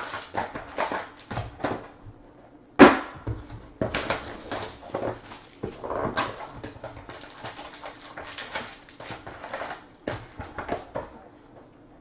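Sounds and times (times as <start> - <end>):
foil wrappers crinkling: 0.0 - 1.4, 3.8 - 11.2.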